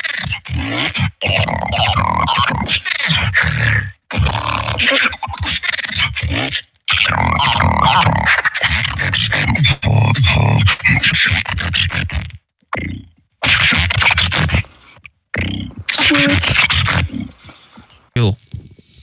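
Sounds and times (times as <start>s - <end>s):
person beatboxing: 0.0s - 19.0s.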